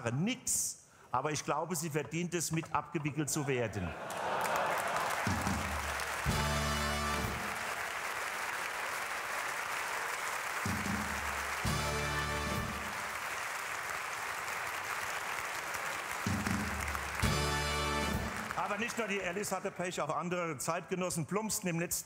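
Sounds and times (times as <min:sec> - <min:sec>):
audience laughing: 0:03.4 - 0:06.0
audience applauding: 0:04.0 - 0:20.1
band playing a fanfare: 0:05.2 - 0:07.8, 0:10.5 - 0:13.2, 0:16.0 - 0:19.1.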